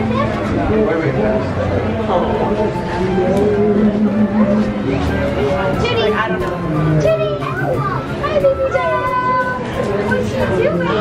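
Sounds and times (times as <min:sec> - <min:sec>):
children and adults chattering: 0:00.0 - 0:11.0.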